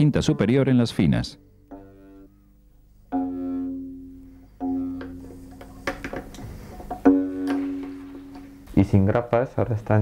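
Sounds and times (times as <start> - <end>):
plucked string instrument: 0.0 - 8.8.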